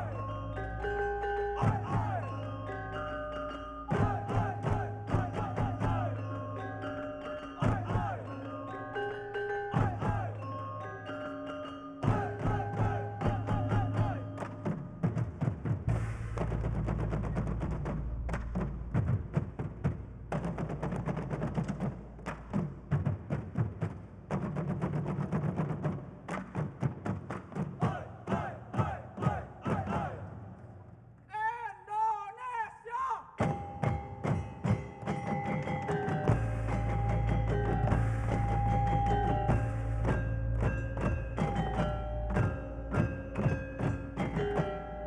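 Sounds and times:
barrel drums beaten: 1.5 - 2.4, 3.9 - 6.3, 12.0 - 28.5, 33.4 - 45.0
people shouting calls: 1.6 - 2.6, 3.9 - 6.4, 7.6 - 8.8, 9.8 - 10.6, 12.0 - 14.4, 27.8 - 30.4, 31.3 - 33.4
metallophones struck: 33.4 - 45.0.

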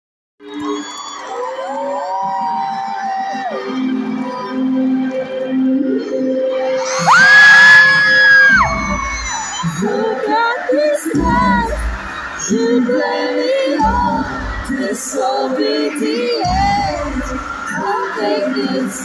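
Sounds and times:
fans screaming: 0.4 - 4.6, 6.8 - 14.8.

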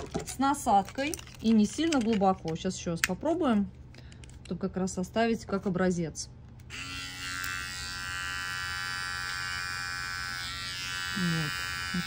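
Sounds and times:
electric clipper buzzing: 6.7 - 12.0.

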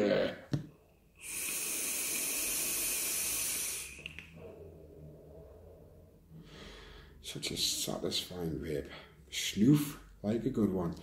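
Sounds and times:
vape hiss: 1.2 - 4.3.

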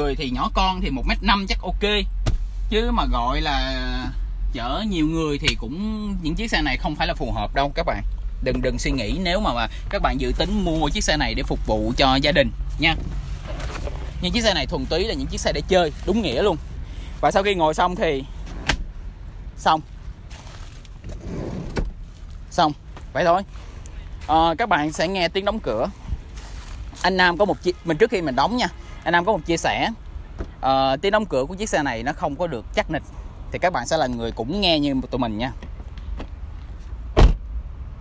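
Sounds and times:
car door thud: 2.2 - 2.5, 37.1 - 37.5.

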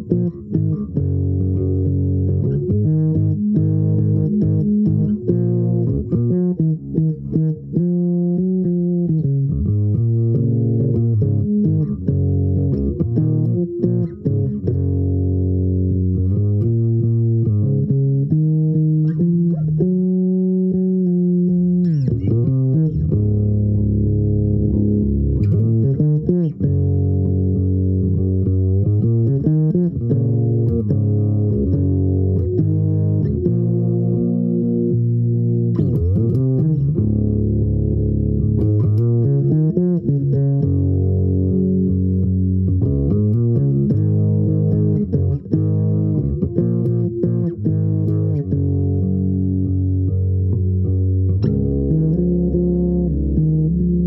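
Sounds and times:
electric bass guitar plucked: 0.0 - 54.0.

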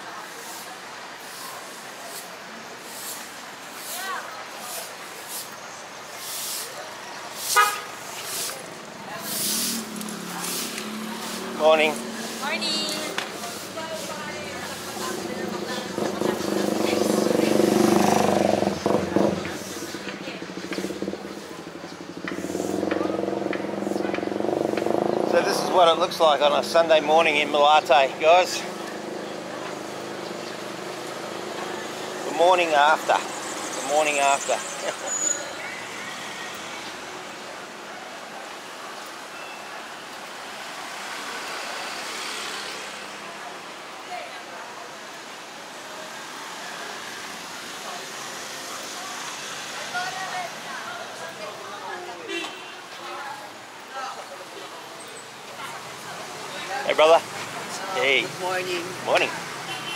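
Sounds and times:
street traffic: 0.0 - 59.9
vehicle driving past: 8.3 - 37.4
motorcycle engine passing: 8.4 - 27.5, 28.4 - 34.8.

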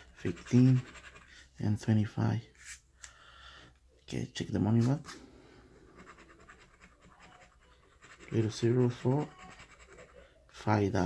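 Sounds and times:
scratching lottery ticket: 0.0 - 1.9, 5.8 - 10.5.

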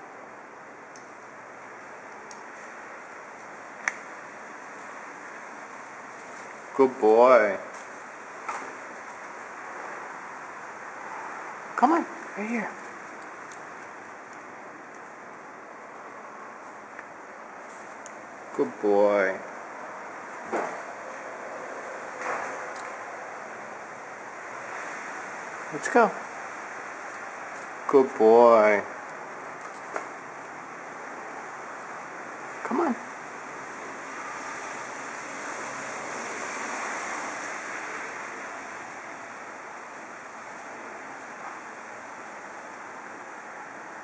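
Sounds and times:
steady background hiss: 0.0 - 44.0.

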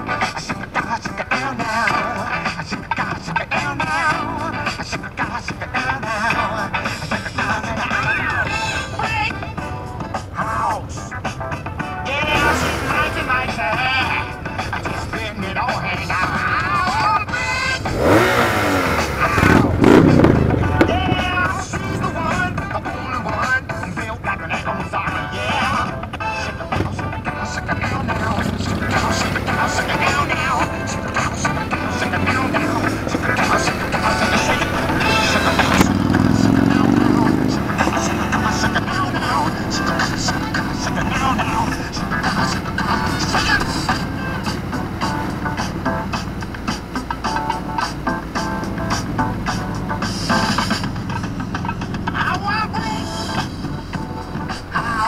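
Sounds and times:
motorcycle engines accelerating: 0.0 - 55.0
song with vocals: 0.0 - 55.0.

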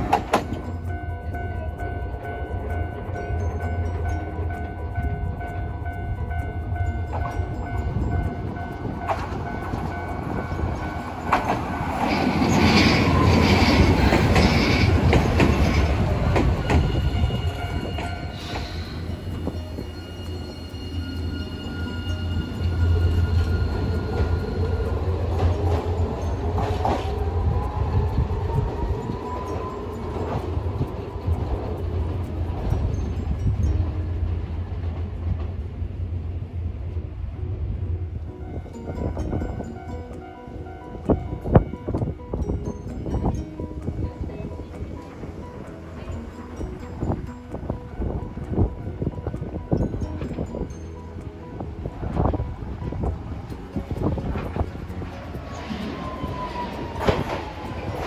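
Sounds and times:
tram running on rails and braking: 0.0 - 58.0.

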